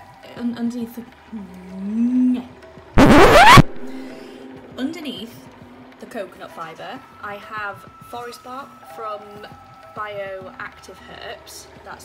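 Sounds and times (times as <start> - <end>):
woman humming hesitantly: 1.4 - 2.5
loud rasping noise: 3.0 - 4.2.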